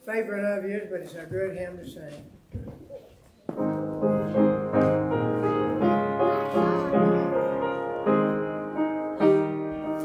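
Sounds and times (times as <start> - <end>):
piano playing hymn chords: 3.5 - 10.0.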